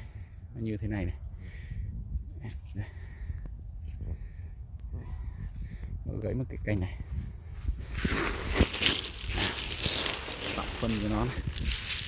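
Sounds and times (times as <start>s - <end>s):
footsteps on dry leaves: 7.1s - 12.0s
leaves and twigs rustling: 7.2s - 12.0s.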